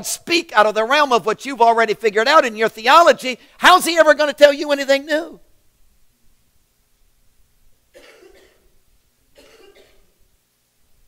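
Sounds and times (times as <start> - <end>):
faint coughs: 7.9 - 8.8, 9.4 - 10.2.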